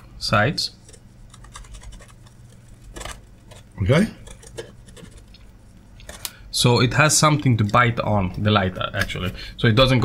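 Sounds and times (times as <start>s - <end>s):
marker pen scribbling on acrylic: 0.8s - 5.3s.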